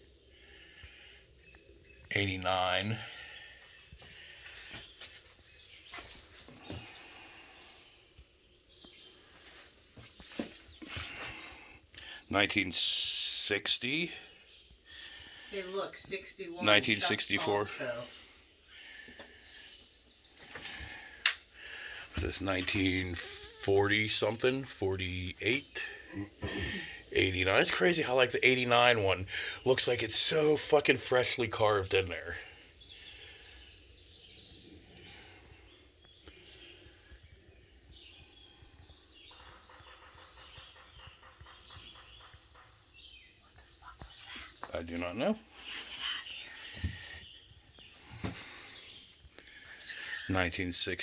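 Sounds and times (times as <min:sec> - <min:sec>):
birds calling: 0:00.0 - 0:51.0.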